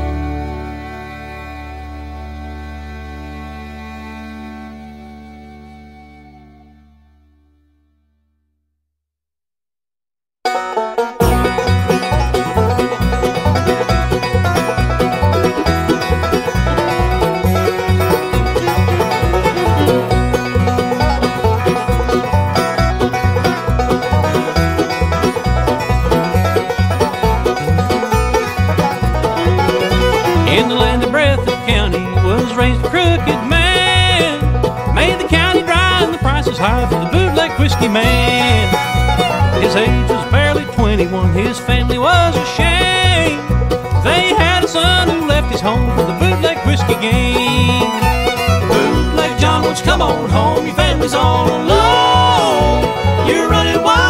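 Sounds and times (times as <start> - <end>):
banjo: 0.0 - 5.2, 10.4 - 54.0
guitar: 0.0 - 8.2, 10.4 - 54.0
sliding melody line: 10.5 - 54.0
bass with steady beat: 11.2 - 54.0.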